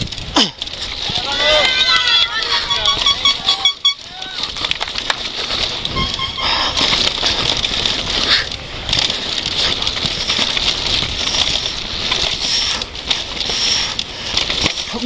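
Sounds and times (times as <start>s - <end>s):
bike rattling over stones: 0.0s - 15.0s
bike tyres hissing on dirt: 0.0s - 15.0s.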